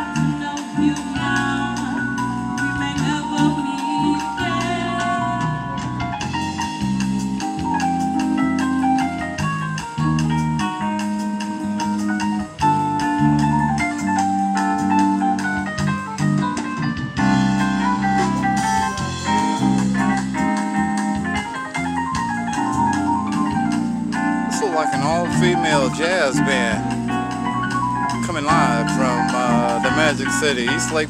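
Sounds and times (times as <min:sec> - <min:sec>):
bass line: 0:00.0 - 0:31.0
electric keyboard chords: 0:00.0 - 0:31.0
live jazz band playing: 0:00.0 - 0:31.0.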